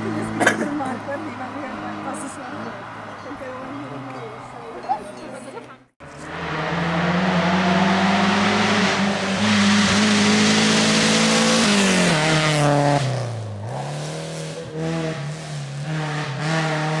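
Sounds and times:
car engine at high revs: 6.0s - 17.0s.

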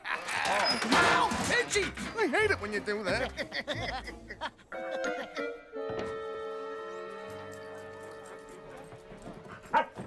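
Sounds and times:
dog barking: 9.7s - 10.0s.

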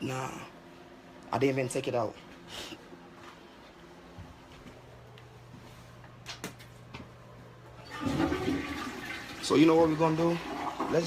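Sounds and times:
toilet flushing: 7.8s - 11.0s.

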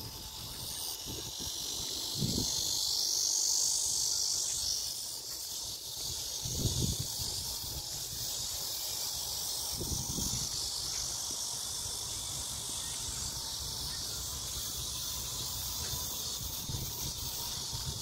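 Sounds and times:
wind buffeting microphone: 0.0s - 2.8s, 6.4s - 8.5s
insects chirping in grass: 0.0s - 18.0s.

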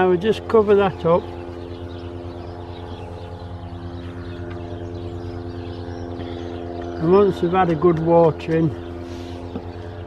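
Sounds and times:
motor drone: 0.0s - 10.0s.

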